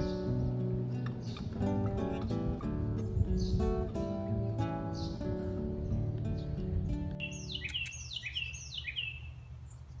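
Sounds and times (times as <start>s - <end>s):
acoustic guitar music: 0.0s - 8.0s
bird calling: 7.2s - 10.0s.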